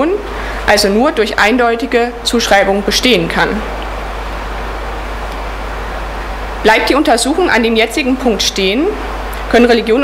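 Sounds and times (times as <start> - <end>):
low constant hum: 0.0 - 10.0
steady background hiss: 0.0 - 10.0.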